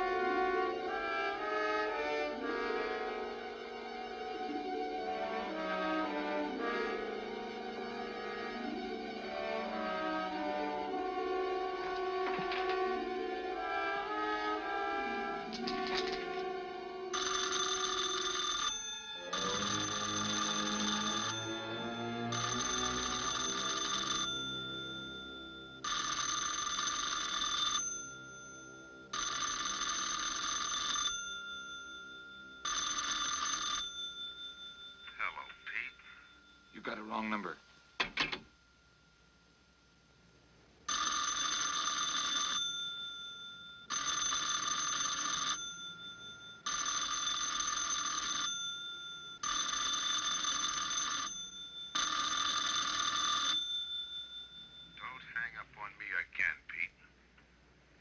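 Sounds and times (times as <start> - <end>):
music: 0.0 - 17.8, 18.4 - 29.7
telephone bell ringing: 5.3 - 16.5, 17.1 - 39.5, 40.9 - 56.5.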